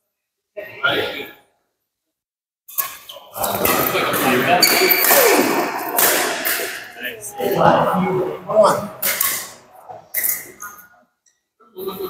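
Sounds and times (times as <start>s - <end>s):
voices in hall: 0.5s - 1.5s, 2.7s - 12.0s
shoes squeaking on court floor: 2.8s - 6.9s
racket striking shuttlecock: 3.6s - 7.0s.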